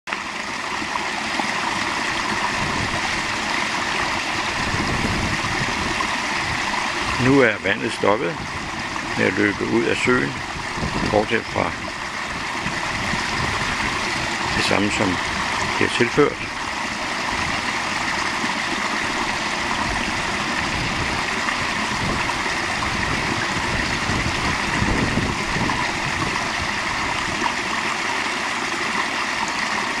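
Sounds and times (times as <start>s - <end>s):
water splashing over stone dam: 0.1s - 30.0s.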